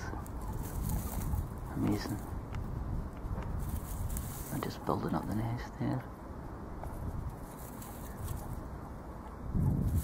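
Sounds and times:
faint rustling: 0.0 - 5.4, 6.8 - 8.7
wind rumble on microphone: 0.0 - 10.0.

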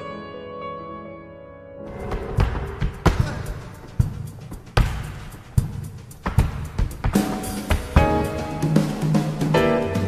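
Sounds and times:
accompanying music: 0.0 - 10.0
dancer's shoes stamping on wood: 2.4 - 8.4.

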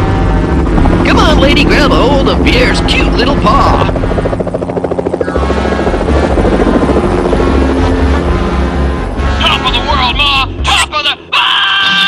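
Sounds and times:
steady low rumble: 0.0 - 11.3
music: 5.3 - 12.0.

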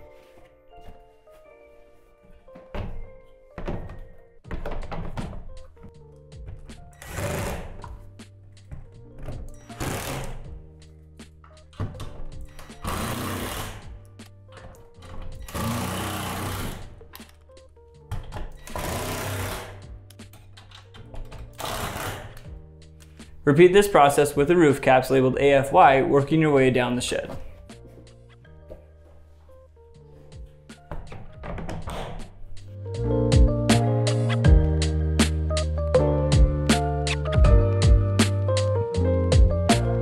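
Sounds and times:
background music: 0.0 - 40.0
cordless drill driving screws: 12.6 - 13.9, 15.4 - 16.9, 18.6 - 19.8.

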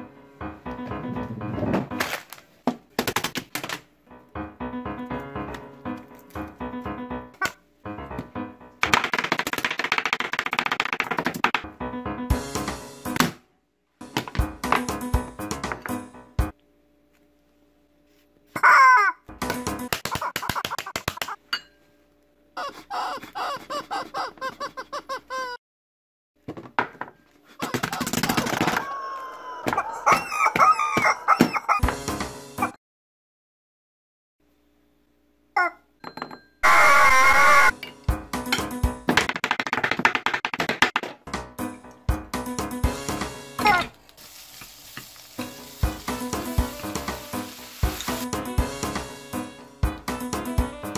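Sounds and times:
rubber chicken toy squawking: 18.6 - 19.2, 22.6 - 25.6, 27.6 - 31.8, 36.6 - 37.8, 43.6 - 43.9.

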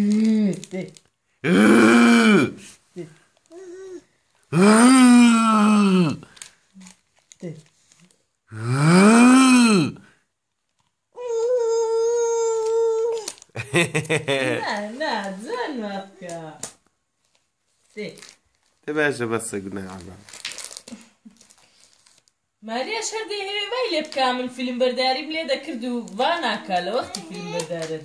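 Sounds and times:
person making wordless vocal sounds: 0.0 - 0.7, 1.4 - 2.6, 3.6 - 6.3, 8.5 - 10.0
toddler wailing: 11.2 - 13.3, 26.9 - 27.8
adult speaking: 18.9 - 20.2.

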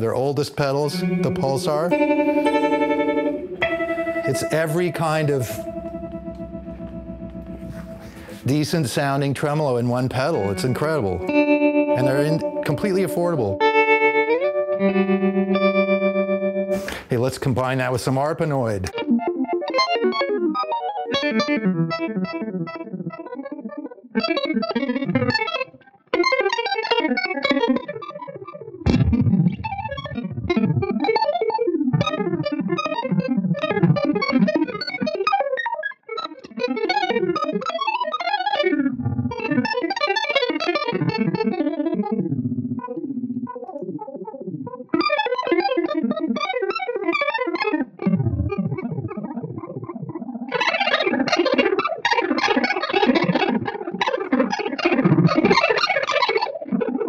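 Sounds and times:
electric guitar arpeggios: 0.0 - 57.0.

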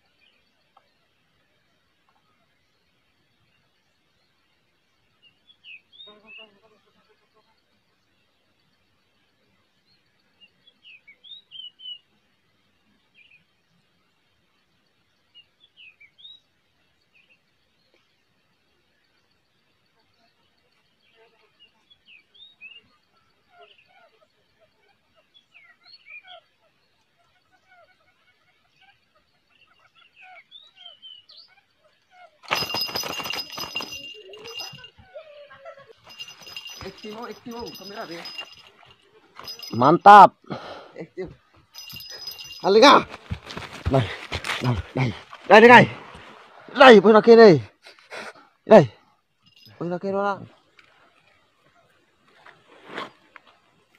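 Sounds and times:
outdoor background noise: 0.0 - 53.9
bird chirping: 25.2 - 35.2, 36.0 - 40.3, 41.2 - 47.3
voices: 32.4 - 47.7
loud clattering and rattling: 32.5 - 34.8.

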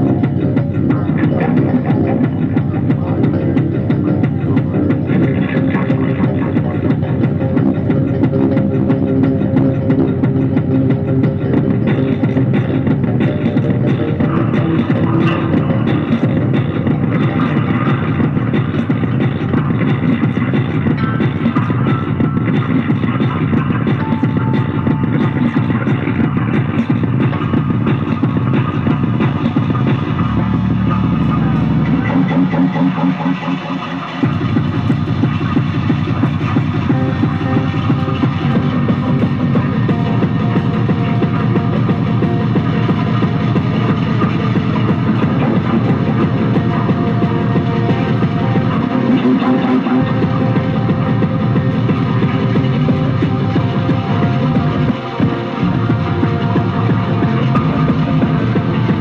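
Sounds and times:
live electronic music with guitar: 0.0 - 59.0
low held tone: 0.0 - 59.0.

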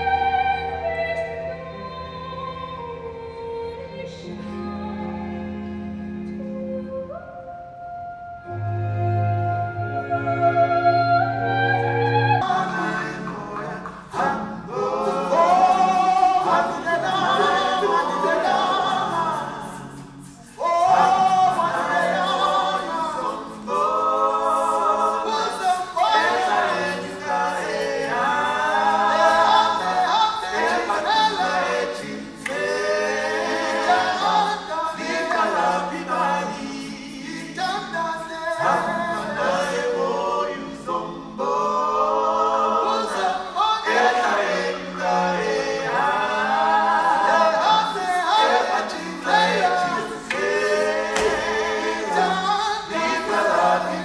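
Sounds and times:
voices singing a cappella: 0.0 - 7.8, 8.4 - 54.0.

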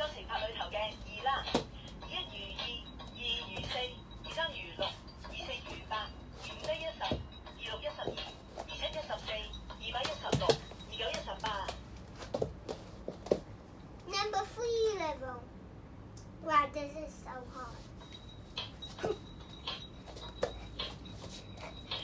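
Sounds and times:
light music: 0.0 - 13.2, 17.7 - 22.0
child stomping on floor: 10.0 - 13.5.

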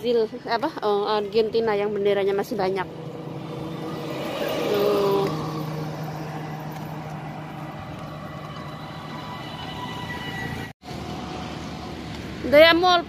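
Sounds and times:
road traffic hum: 0.0 - 13.0
motorised three-wheeler passing: 1.2 - 12.8.

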